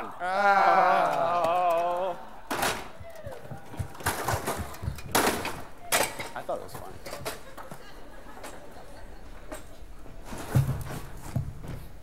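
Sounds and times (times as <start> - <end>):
stepladder knocks and clatters: 2.5 - 7.5.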